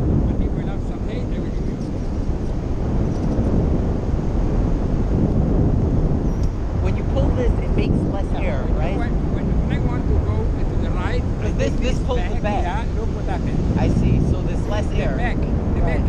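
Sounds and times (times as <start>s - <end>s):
heavy wind buffeting microphone: 0.0s - 16.0s
faint voices: 6.8s - 16.0s.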